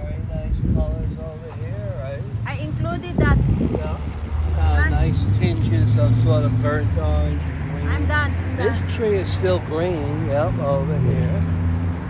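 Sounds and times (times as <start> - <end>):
voices: 0.0 - 11.5
vehicle engine hum: 0.0 - 12.0.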